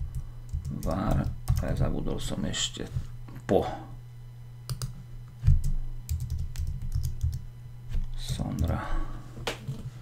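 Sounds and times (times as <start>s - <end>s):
keyboard typing clicks: 4.7s - 7.4s.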